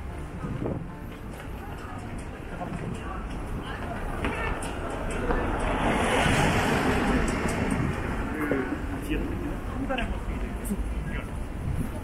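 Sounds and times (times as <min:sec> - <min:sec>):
passers-by talking faintly: 0:00.0 - 0:12.0
passing vehicle road noise: 0:00.0 - 0:12.0.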